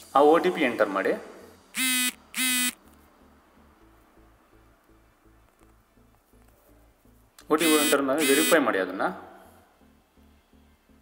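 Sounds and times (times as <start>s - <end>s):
short buzzy notification beeps: 1.8s - 2.8s, 7.6s - 8.6s.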